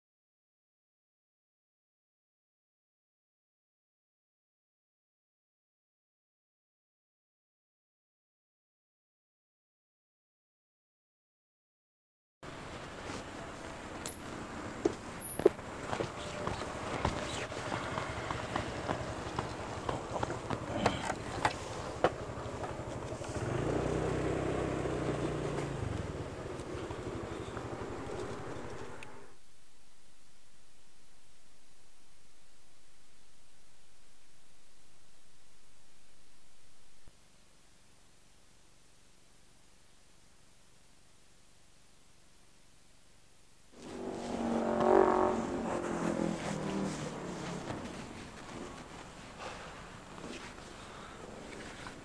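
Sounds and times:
motorcycle engine pulling away: 12.7s - 29.4s, 43.8s - 52.0s.

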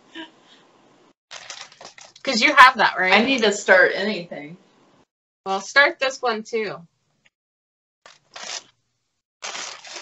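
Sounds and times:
plastic sleeve rustling: 1.3s - 2.4s, 8.1s - 8.8s, 9.4s - 10.0s.

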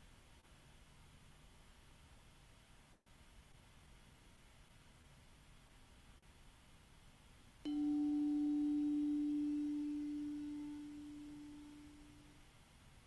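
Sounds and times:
singing bowl ringing: 7.7s - 12.4s.

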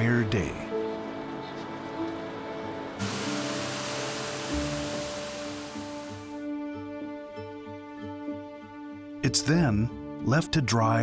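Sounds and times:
background music with held notes: 0.0s - 11.0s
boiling seawater hissing: 3.0s - 6.4s.

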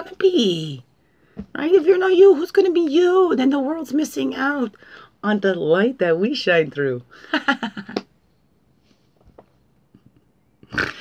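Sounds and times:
faint breaths: 4.7s - 5.2s.

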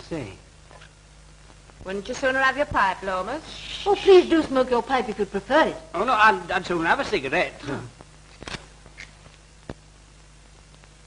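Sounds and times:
film soundtrack hiss: 0.0s - 11.0s.

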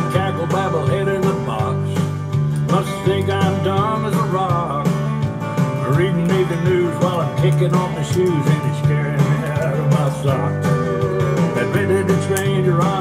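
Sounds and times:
country music with guitar: 0.0s - 13.0s.

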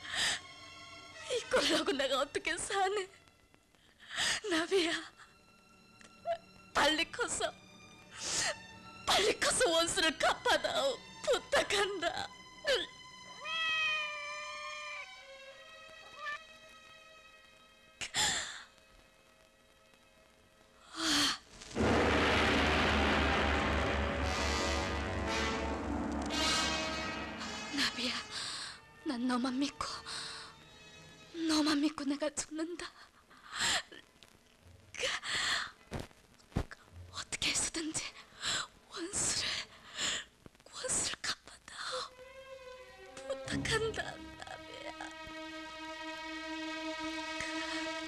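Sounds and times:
cat meowing: 13.4s - 15.3s, 16.0s - 16.5s.

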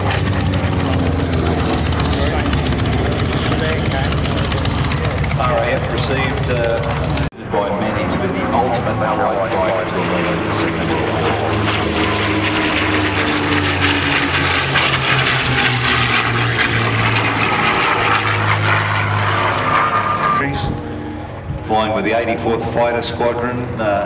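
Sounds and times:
propeller planes flying overhead: 0.0s - 24.0s.

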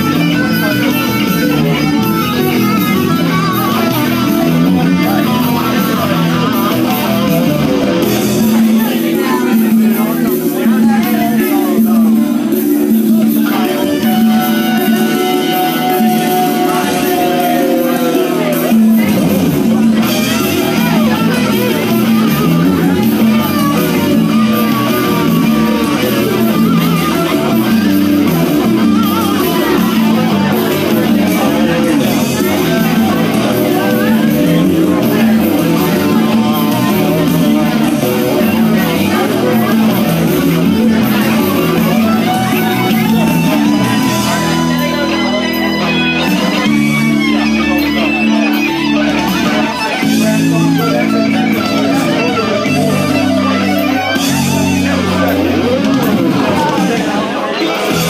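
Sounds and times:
electric bass line: 0.0s - 58.0s
electric guitar line: 0.0s - 58.0s.

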